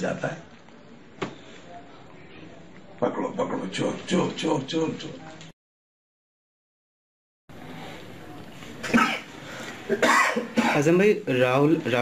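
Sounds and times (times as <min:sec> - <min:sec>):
man coughing: 0:08.9 - 0:09.3, 0:09.9 - 0:10.9.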